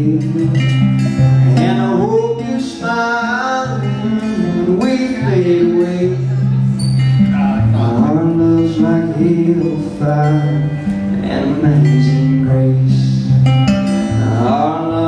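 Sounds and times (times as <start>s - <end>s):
man singing: 0.0s - 6.7s, 7.3s - 15.0s
acoustic guitar strummed and picked: 0.0s - 15.0s.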